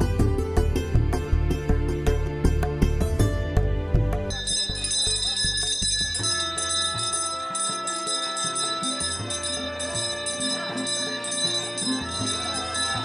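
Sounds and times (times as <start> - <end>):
instrumental music: 0.0 - 13.0
bell ringing: 4.3 - 13.0.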